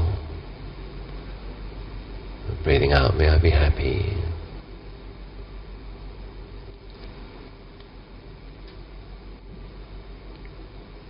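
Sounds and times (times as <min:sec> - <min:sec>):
person speaking: 0:00.0 - 0:00.4, 0:02.4 - 0:04.6
background hiss: 0:00.0 - 0:11.0
low hum: 0:00.0 - 0:11.0.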